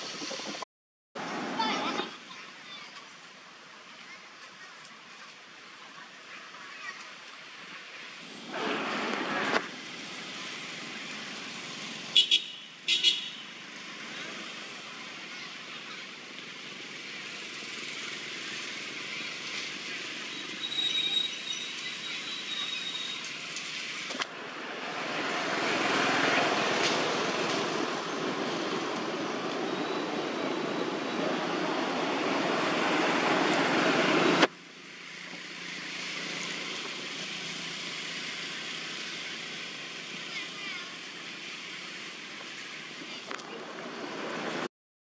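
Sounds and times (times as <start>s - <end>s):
outdoor background noise: 0.0s - 44.7s.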